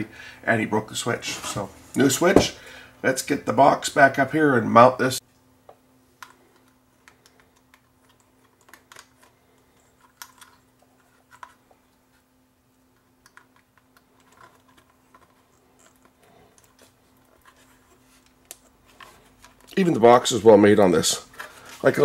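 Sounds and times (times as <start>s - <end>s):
faint steady hum: 0.0s - 22.0s
clicks and rustles of handling wiring: 6.2s - 12.3s, 12.9s - 22.0s.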